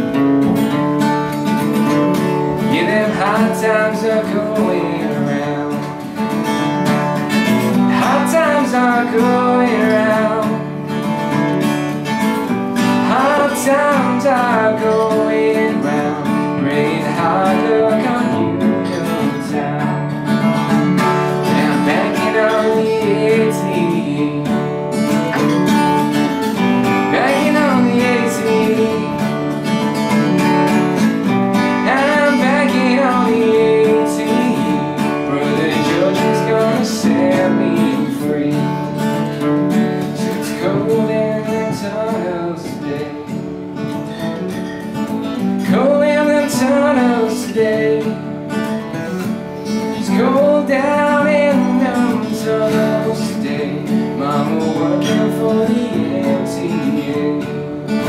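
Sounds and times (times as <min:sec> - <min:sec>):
acoustic guitar strummed: 0:00.0 - 0:58.0
man singing: 0:01.5 - 0:11.0, 0:12.8 - 0:43.8, 0:45.4 - 0:58.0.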